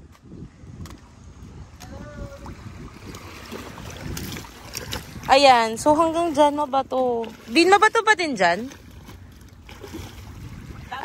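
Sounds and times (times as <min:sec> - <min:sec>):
shallow water sloshing and splashing: 0:00.0 - 0:11.0
wind buffeting microphone: 0:00.0 - 0:11.0.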